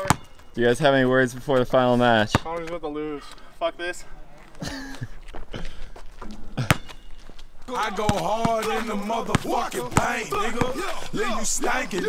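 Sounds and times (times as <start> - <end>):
ball striking sharp knock: 0.0 - 0.3.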